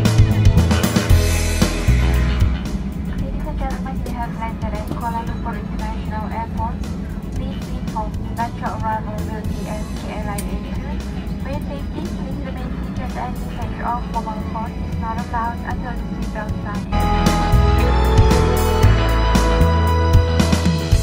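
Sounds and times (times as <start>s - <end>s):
aircraft cabin hum: 2.7s - 16.9s
announcement over cabin pa: 3.1s - 18.0s.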